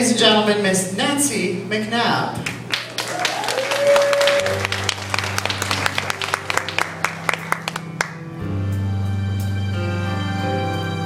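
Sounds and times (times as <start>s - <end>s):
audience applauding: 2.4s - 8.4s
instrumental music intro: 4.0s - 11.0s.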